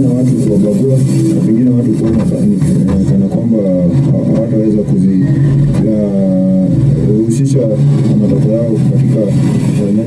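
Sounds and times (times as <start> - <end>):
person speaking muffled: 0.0 - 10.0.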